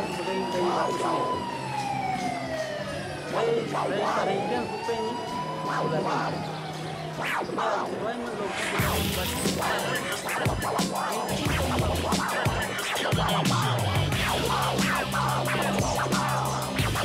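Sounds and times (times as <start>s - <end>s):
siren-like wail: 0.0s - 17.0s.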